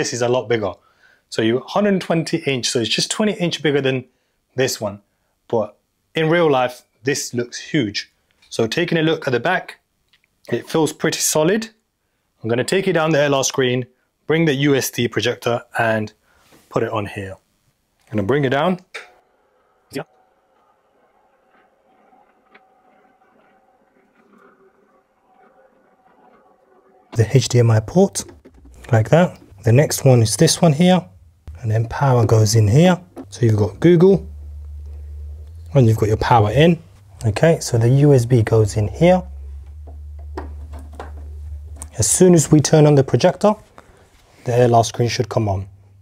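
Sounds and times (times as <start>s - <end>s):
electric motor hum: 19.2s - 46.0s.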